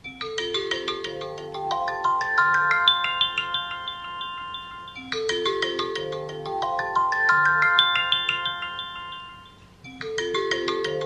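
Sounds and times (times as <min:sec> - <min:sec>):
phone alarm tone ringing: 0:00.2 - 0:11.0.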